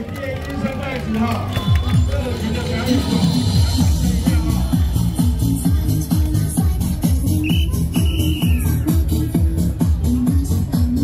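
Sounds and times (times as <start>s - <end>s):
loud electronic dance music: 1.4s - 11.0s.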